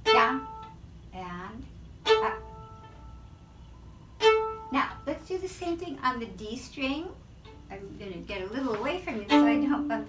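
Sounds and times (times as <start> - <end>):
violin bowed notes: 0.0 - 0.8, 2.0 - 5.4, 7.4 - 8.0, 8.7 - 10.0.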